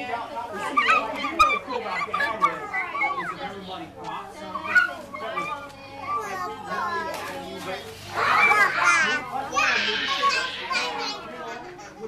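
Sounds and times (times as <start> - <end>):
children shouting and squealing: 0.5 - 3.7, 4.4 - 7.2, 8.1 - 12.0.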